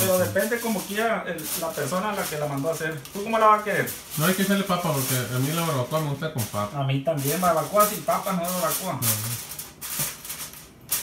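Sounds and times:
aluminum foil crinkling: 0.0 - 11.0.

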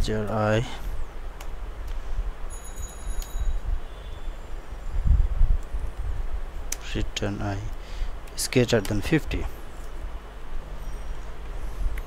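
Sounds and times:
faint high whine: 2.4 - 6.1.

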